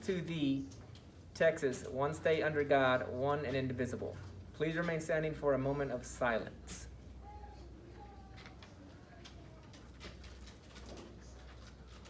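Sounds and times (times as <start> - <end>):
small clicks and rustles: 8.0 - 12.0.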